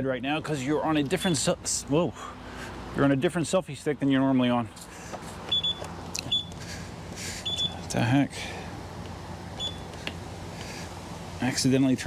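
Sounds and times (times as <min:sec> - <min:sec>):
short high beep: 0:09.6 - 0:09.8.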